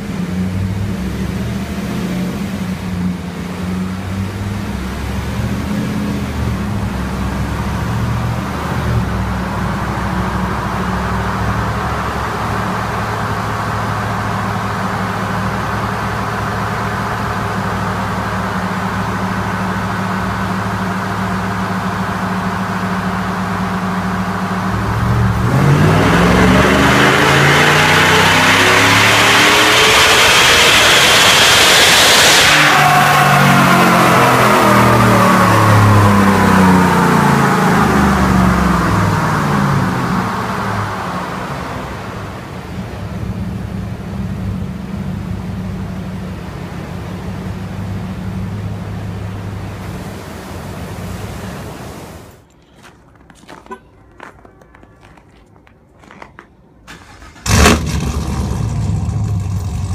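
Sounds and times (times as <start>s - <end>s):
truck engine on dyno: 0.0s - 52.5s, 56.8s - 59.9s
high rush: 4.2s - 52.4s.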